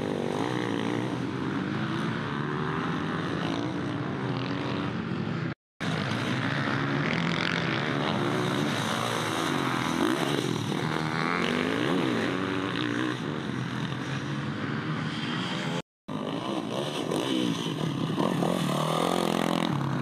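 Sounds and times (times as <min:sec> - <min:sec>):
dirt bikes revving: 0:00.0 - 0:20.0.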